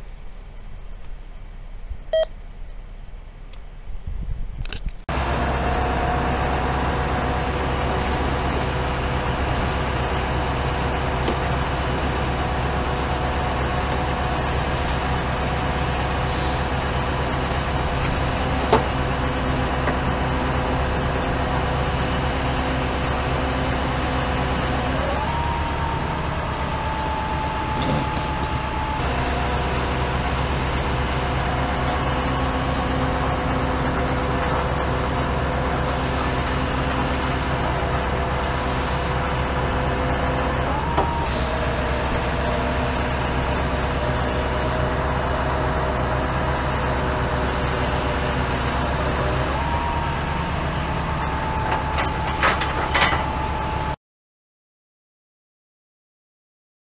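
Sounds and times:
truck engine running: 5.1 - 54.0
winch whining: 5.1 - 54.0.

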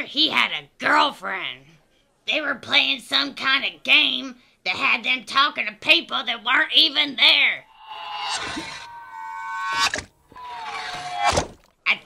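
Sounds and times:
pitched humming tone: 7.7 - 10.6.

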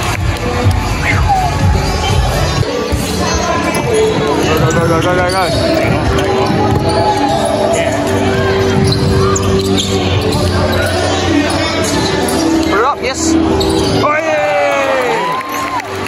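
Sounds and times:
arena music: 0.0 - 16.0
crowd voices: 0.0 - 16.0.

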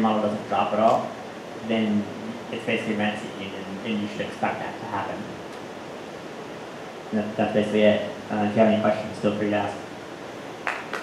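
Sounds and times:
room tone hiss: 0.0 - 11.0.

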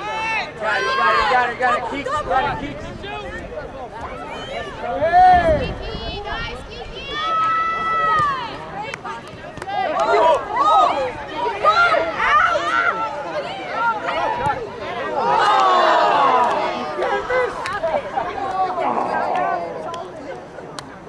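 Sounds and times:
people shouting and calling out: 0.0 - 20.5.

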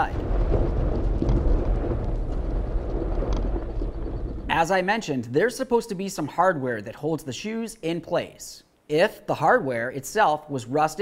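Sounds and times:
deep steady rumble: 0.0 - 4.7.

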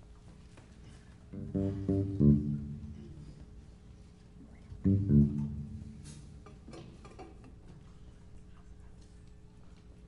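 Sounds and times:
bass guitar notes: 1.3 - 3.8, 4.8 - 6.6.

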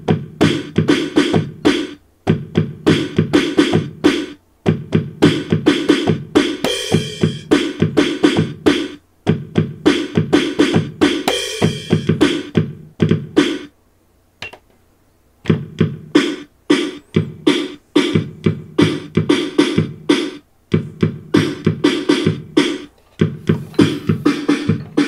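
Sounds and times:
electronic drum hits: 20.8 - 25.0.

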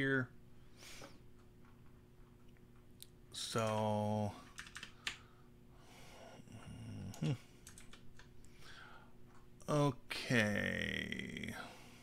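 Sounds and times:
computer keyboard and mouse clicks: 4.5 - 5.2, 7.1 - 8.3.

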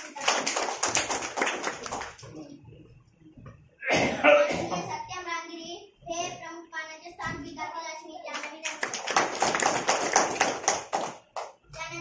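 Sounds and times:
people clapping: 0.0 - 2.5, 8.3 - 11.7
children's voices: 11.7 - 12.0.

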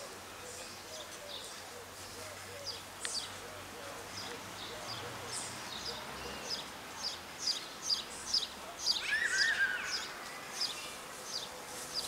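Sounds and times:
small birds chirping: 0.0 - 12.0
low warbling bird call: 8.9 - 10.8.

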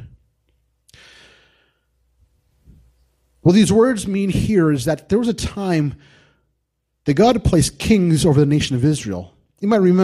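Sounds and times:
man breathing close to microphone: 0.9 - 2.0, 6.0 - 6.6.

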